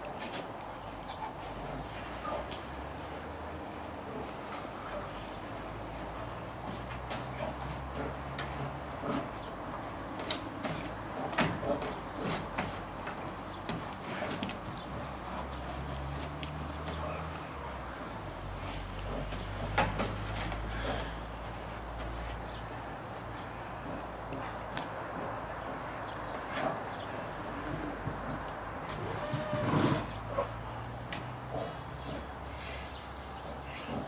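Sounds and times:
thuds and scrapes on wooden deck: 18.6 - 21.1, 27.6 - 30.4.

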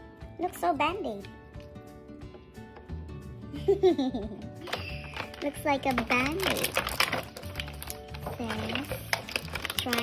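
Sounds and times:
background music: 0.0 - 10.0
plastic packaging crackling: 4.6 - 10.0.

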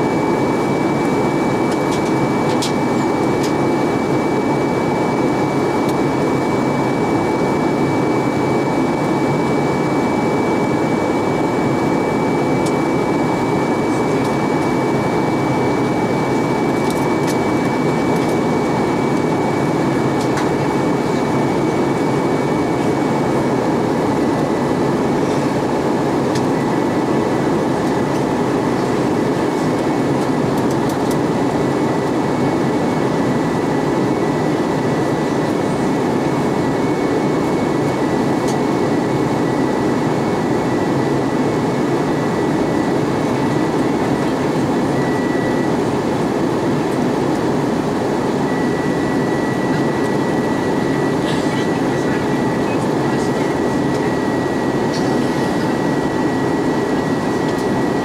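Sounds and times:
aircraft cabin air and engine noise: 0.0 - 58.0
steady high-pitched tone: 0.0 - 58.0.

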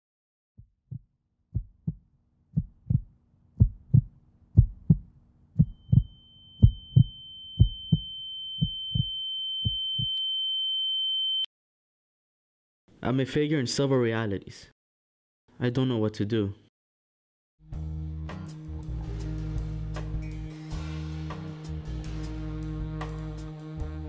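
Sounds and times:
heartbeat thumps: 0.6 - 10.1
high steady tone: 5.6 - 11.4.

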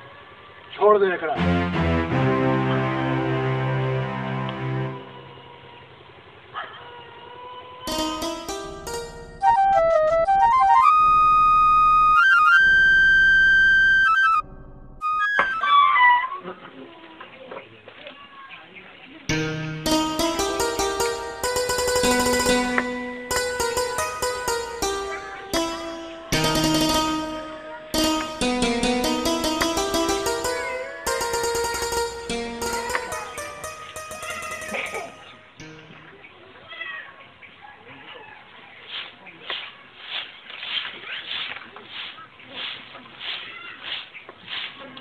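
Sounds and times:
broom sweeping dirt: 38.9 - 45.0.

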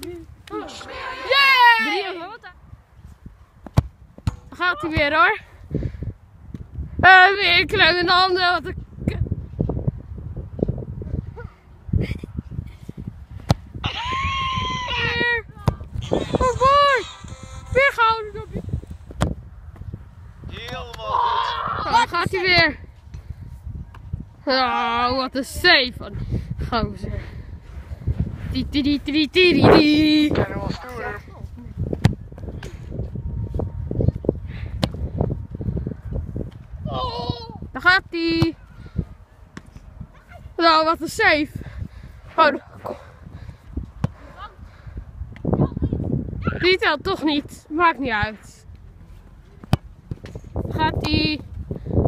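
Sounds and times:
wind rumble on microphone: 2.5 - 52.0
football kick thud: 3.6 - 4.6.

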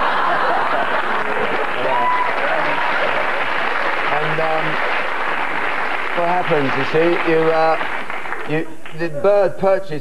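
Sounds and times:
audience laughing: 0.0 - 5.6
audience applauding: 0.0 - 9.5.

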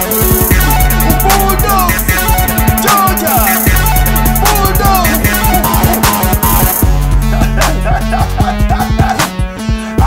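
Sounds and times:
hip hop beat: 0.0 - 10.0.

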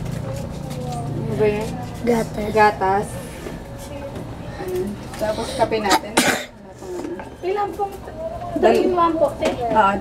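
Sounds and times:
person coughing: 5.9 - 6.6.

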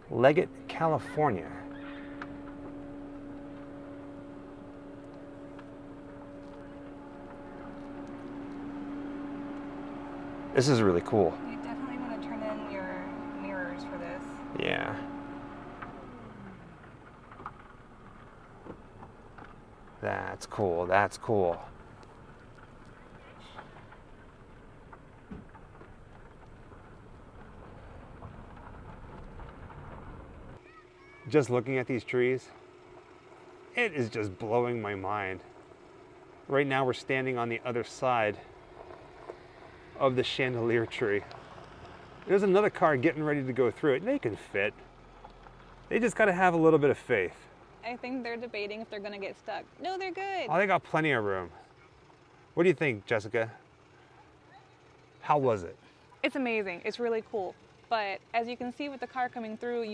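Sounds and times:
car cabin hum: 0.0 - 30.7
faint rumble: 0.0 - 31.2.

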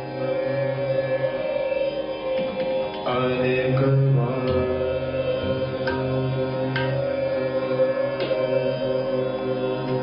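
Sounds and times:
bowed string drone: 0.0 - 10.0
man singing devotional line: 0.1 - 10.0
tabla strokes: 2.3 - 8.8.

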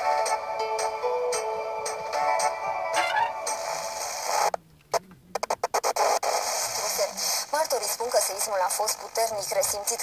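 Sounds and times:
music on a television: 0.0 - 4.6
static hiss: 3.0 - 10.0.

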